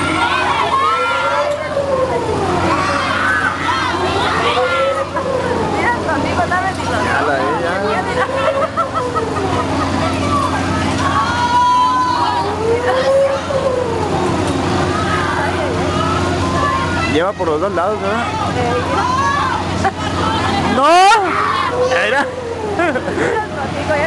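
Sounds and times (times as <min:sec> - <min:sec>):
riders crying out and shouting: 0:00.0 - 0:05.9, 0:07.4 - 0:17.2, 0:18.2 - 0:23.0
ride machine hum: 0:00.0 - 0:24.0.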